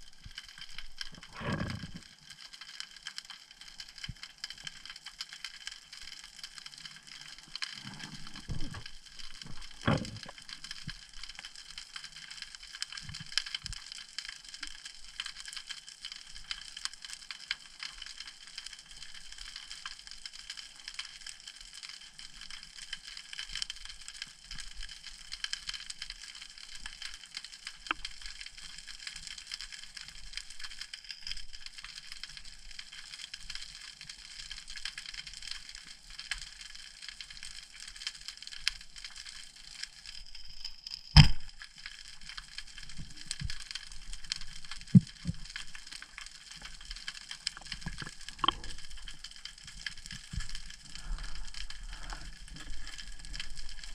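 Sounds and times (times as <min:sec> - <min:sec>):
snapping shrimp crackle: 0:00.0 - 0:15.7, 0:37.2 - 0:53.9.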